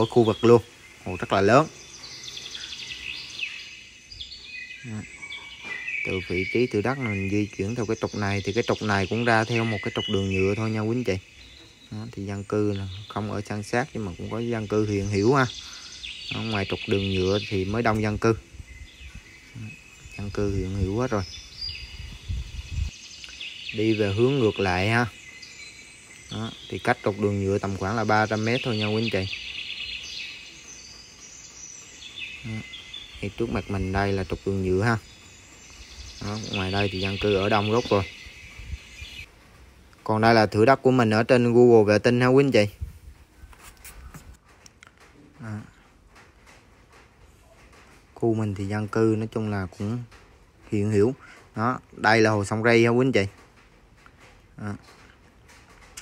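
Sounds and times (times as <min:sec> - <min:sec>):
birds chirping and calling: 0:00.0 - 0:56.0.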